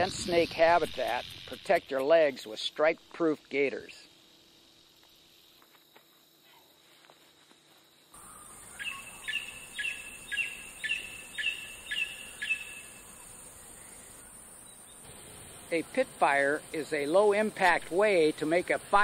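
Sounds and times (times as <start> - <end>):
high insect buzz: 0.0 - 19.0.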